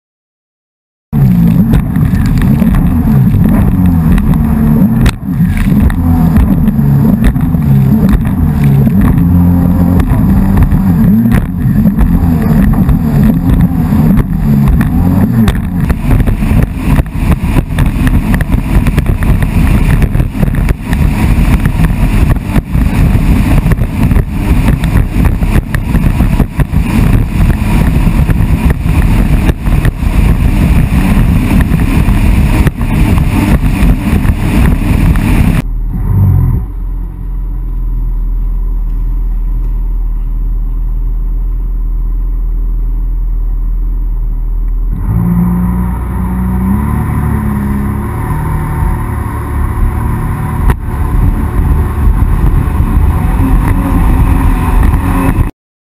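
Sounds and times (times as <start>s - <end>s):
jet ski engine: 1.2s - 55.5s
wind buffeting microphone: 1.6s - 35.7s, 48.8s - 55.5s.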